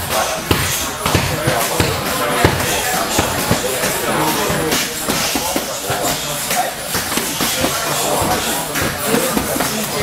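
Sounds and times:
gym room noise: 0.0s - 10.0s
background voices: 2.2s - 5.9s.

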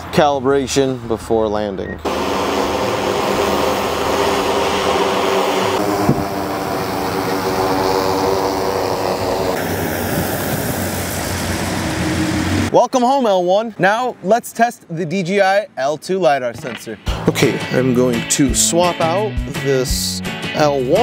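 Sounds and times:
drone propellers buzzing: 2.0s - 12.7s.

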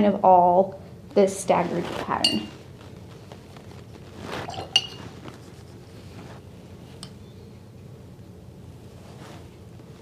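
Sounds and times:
paintbrush scraping palette: 1.6s - 7.1s.

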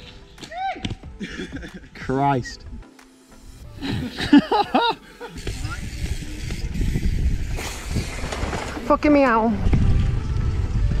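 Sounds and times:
person laughing: 1.2s - 2.0s, 3.8s - 5.4s
mountain bike trail noise: 3.4s - 11.0s
wind rumbling on microphone: 5.4s - 11.0s.

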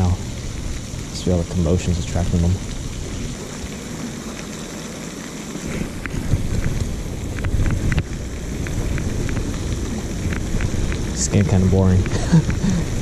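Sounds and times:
fountain water splashing: 0.0s - 13.0s
wind buffeting microphone: 5.6s - 13.0s
light ticks: 10.3s - 12.6s.

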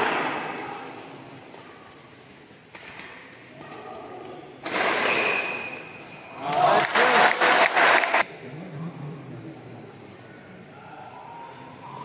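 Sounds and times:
spectators clapping and shouting: 6.5s - 8.2s.

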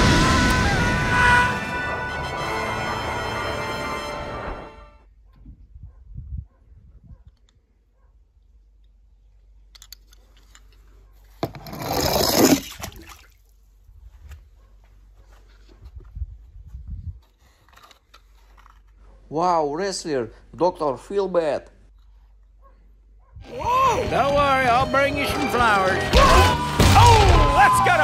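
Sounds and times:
film soundtrack music: 0.0s - 5.1s.

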